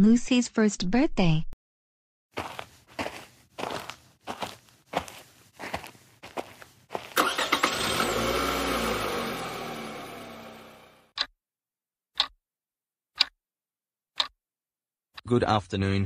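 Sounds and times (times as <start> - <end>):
footsteps walking: 2.4 - 7.5
car engine starting and running: 6.9 - 11.2.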